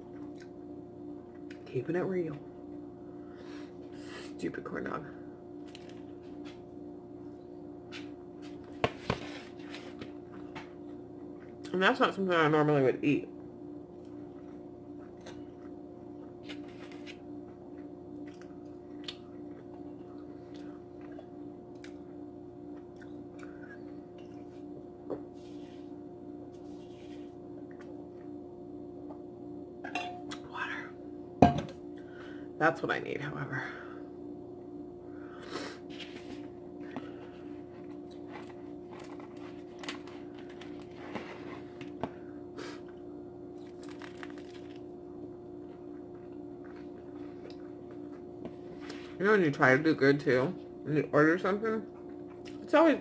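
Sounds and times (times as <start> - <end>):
steady low hum: 0.0 - 53.0
person chewing: 17.7 - 22.0.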